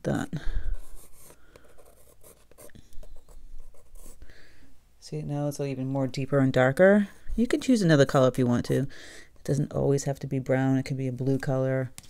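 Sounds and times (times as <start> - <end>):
pencil scratching on paper: 0.7 - 4.2.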